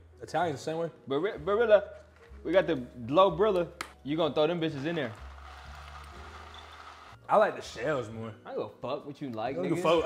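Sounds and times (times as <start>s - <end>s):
dry pasta poured from box: 4.8s - 7.2s.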